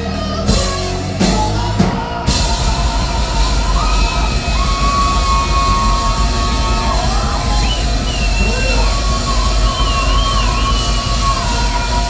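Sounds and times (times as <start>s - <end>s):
crowd noise: 0.0s - 12.0s
heavy metal band playing: 0.0s - 12.0s.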